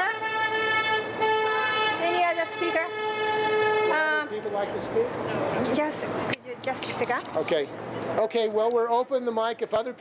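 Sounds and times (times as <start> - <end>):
vehicle horn long note: 0.0 - 4.3.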